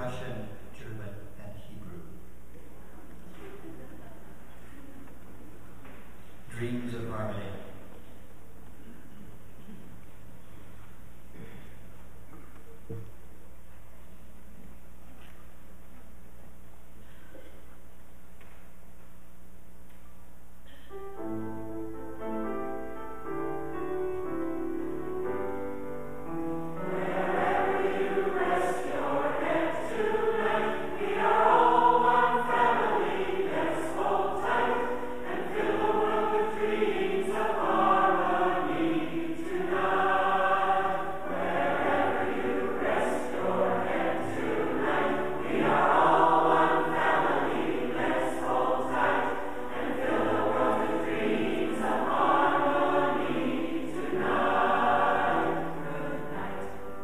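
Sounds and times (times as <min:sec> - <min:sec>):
choir singing in harmony: 0:21.2 - 0:57.0.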